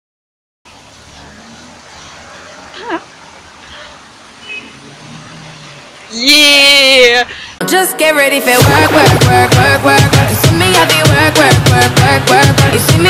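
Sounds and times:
distant traffic hum: 0:00.7 - 0:07.6.

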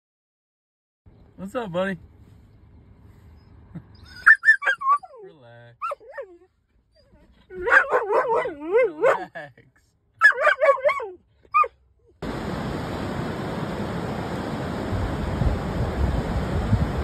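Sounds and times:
dog whining: 0:03.3 - 0:09.2, 0:10.2 - 0:11.8.

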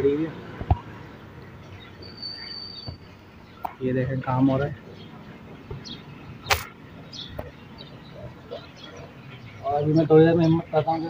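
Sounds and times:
faint high chirps: 0:01.8 - 0:03.8
sharp crack: 0:06.5 - 0:06.8.

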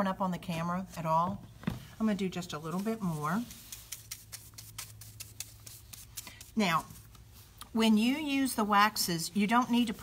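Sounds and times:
brush scratching on wood: 0:02.6 - 0:07.1.

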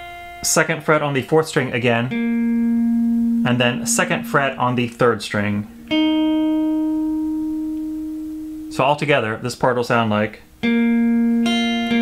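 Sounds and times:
electric guitar note ringing: 0:00.0 - 0:09.0, 0:10.6 - 0:12.0.

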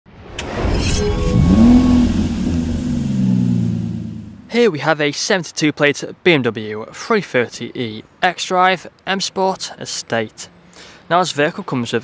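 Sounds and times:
short whoosh: 0:00.2 - 0:04.5
car engine revving: 0:01.0 - 0:04.5.

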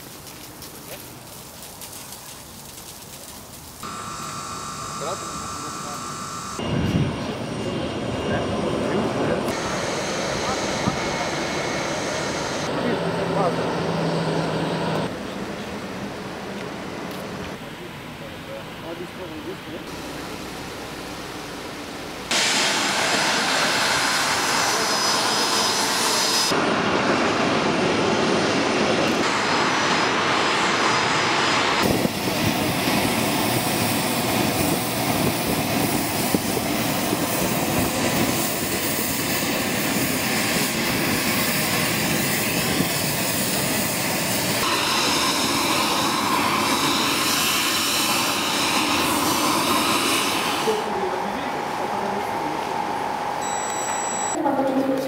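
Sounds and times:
high whine: 0:03.8 - 0:13.5, 0:52.6 - 0:54.5
jet engines running: 0:03.8 - 0:18.1, 0:19.8 - 0:54.4.

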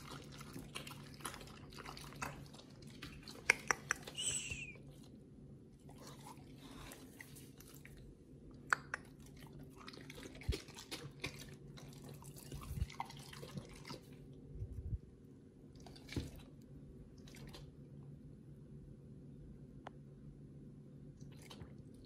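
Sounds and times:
wet squishing of raw chicken: 0:00.0 - 0:04.6, 0:09.4 - 0:14.3.

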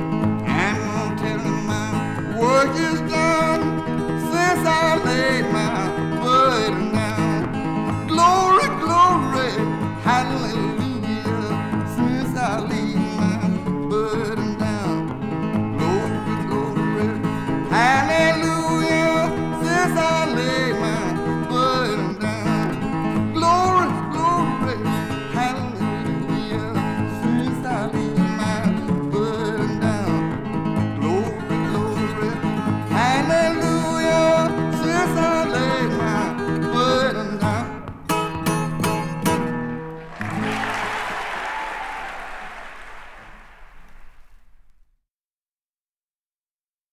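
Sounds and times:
solo guitar with bent notes: 0:00.0 - 0:40.2
audience applause: 0:39.9 - 0:44.5.

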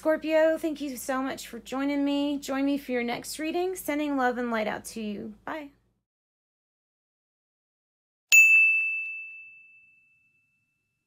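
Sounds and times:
bright bell-like ding: 0:08.3 - 0:11.0.

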